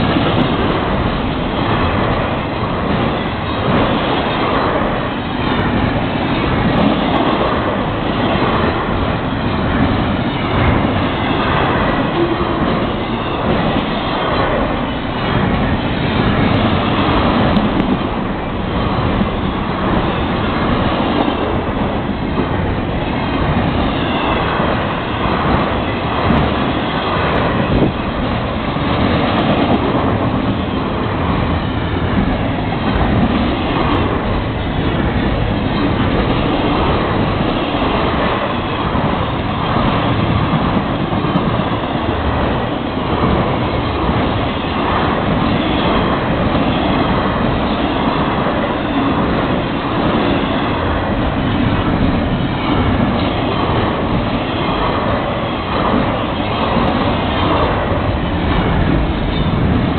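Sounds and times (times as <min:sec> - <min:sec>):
train wheels on rail: 0:00.0 - 0:59.9.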